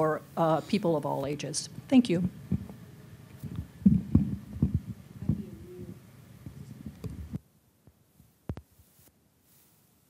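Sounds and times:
microphone handling bumps: 2.1s - 2.8s, 3.4s - 7.4s.

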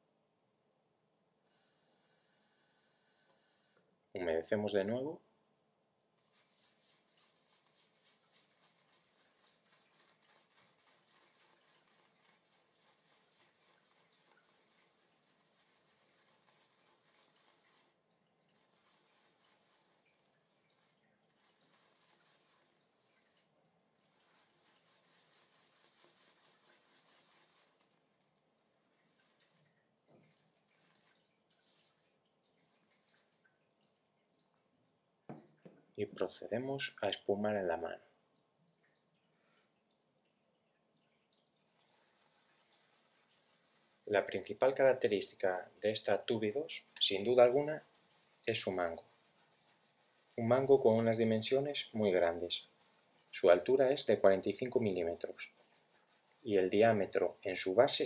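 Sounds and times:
shaving brush swishing in soap: 6.2s - 34.0s, 41.6s - 58.0s.

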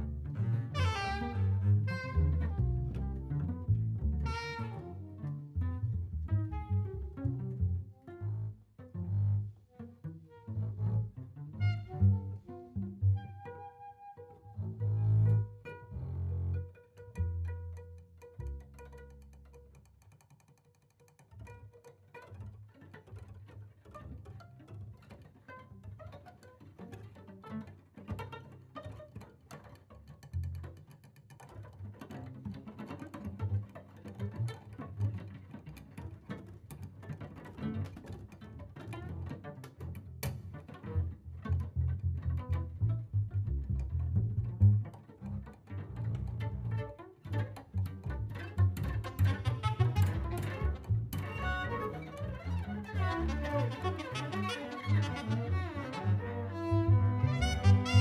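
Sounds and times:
cello: 0.0s - 58.0s
double bass: 0.0s - 58.0s.

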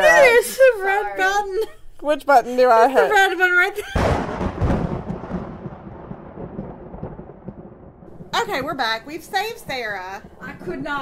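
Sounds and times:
rumbling sound effect: 4.0s - 8.4s.

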